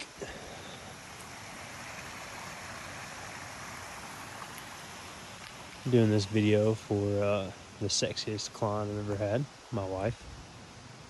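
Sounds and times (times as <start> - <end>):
creek water flowing: 0.0 - 11.0.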